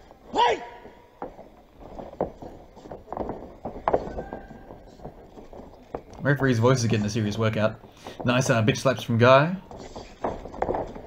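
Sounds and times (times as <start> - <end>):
people shouting: 0.2 - 1.1.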